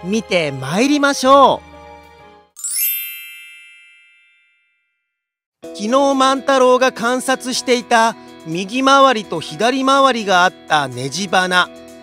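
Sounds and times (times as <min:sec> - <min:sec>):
bright chime ding: 0:02.6 - 0:04.9
soft background music: 0:05.6 - 0:12.0.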